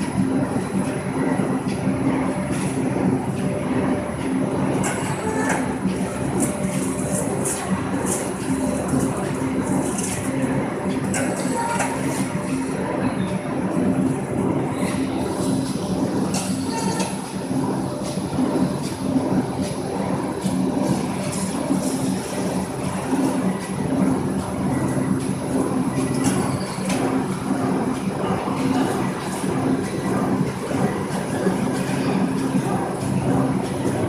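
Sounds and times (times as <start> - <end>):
machinery rumble with hum: 0.0 - 34.0.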